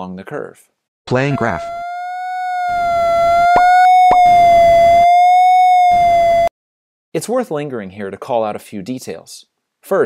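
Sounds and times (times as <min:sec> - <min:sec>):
electronic tone rising and falling: 0:01.1 - 0:06.5.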